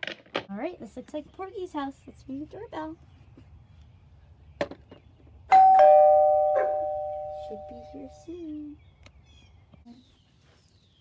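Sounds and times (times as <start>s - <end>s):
doorbell chime ding-dong: 5.5s - 8.2s.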